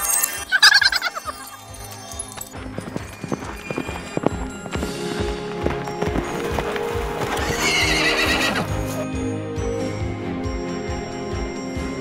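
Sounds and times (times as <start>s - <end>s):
background music: 0.0s - 12.0s
galloping hoofbeats: 2.1s - 9.0s
horse whinny: 7.3s - 9.1s.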